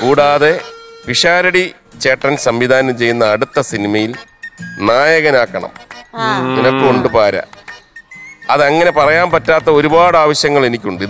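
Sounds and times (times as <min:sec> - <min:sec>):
man singing a drawn-out vowel: 0:06.2 - 0:07.2.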